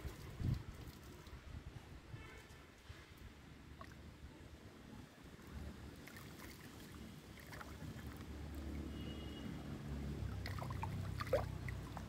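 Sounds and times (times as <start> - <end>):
light water splashes: 0.0 - 1.8, 3.1 - 12.0
water sloshing in plastic tub: 10.3 - 12.0.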